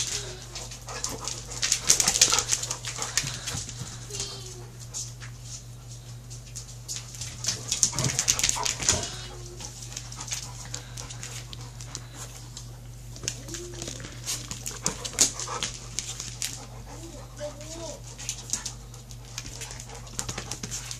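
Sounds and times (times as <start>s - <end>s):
dog claws clicking on floor: 0.0s - 20.9s.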